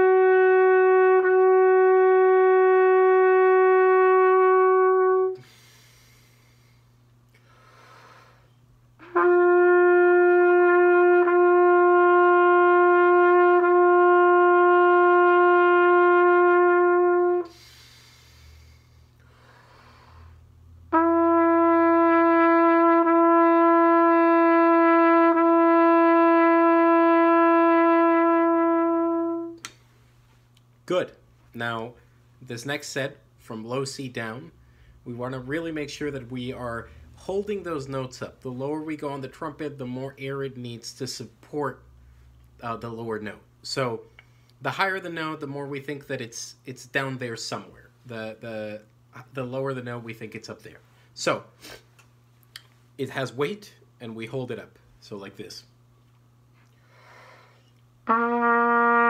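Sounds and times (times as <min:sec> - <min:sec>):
trumpet playing long tones: 0:00.0 - 0:06.0, 0:09.0 - 0:18.4, 0:20.8 - 0:29.7, 0:58.0 - 0:59.0.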